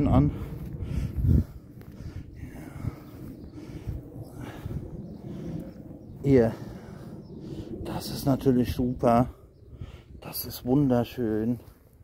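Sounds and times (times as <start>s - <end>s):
footsteps in dry grass: 0.0s - 7.2s.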